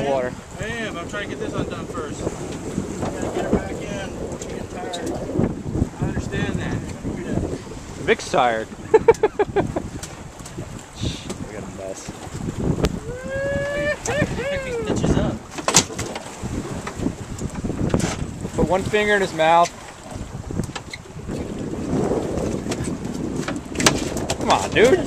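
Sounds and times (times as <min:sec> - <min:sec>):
wind noise on microphone: 0:00.0 - 0:25.0
man laughing: 0:08.8 - 0:09.9, 0:13.0 - 0:15.0.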